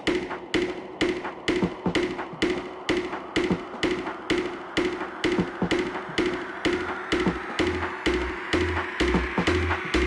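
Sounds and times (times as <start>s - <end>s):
tech house beat: 0.0s - 10.0s.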